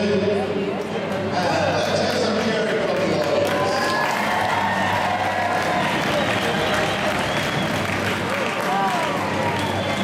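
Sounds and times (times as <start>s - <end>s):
audience applauding: 1.8s - 10.0s
music: 3.5s - 10.0s.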